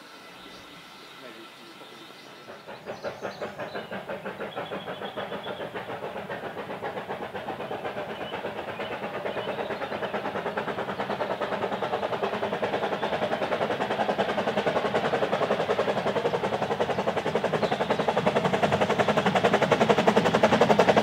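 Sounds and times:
steam locomotive exhaust chuffs: 0.0 - 21.0.

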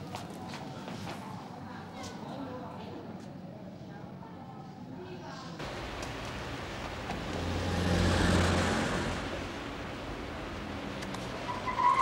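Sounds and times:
car passing: 5.6 - 12.0
city street traffic: 5.6 - 12.0.

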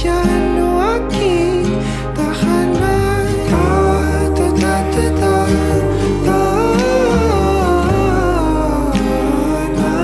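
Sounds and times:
bass and soft band backing: 0.0 - 10.0
man singing pop ballad: 0.0 - 10.0.

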